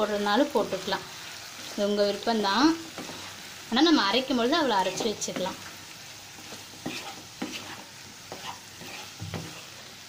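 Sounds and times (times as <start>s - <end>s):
frying sizzle: 0.0s - 10.0s
spatula scraping frying pan: 2.7s - 3.6s, 4.5s - 10.0s.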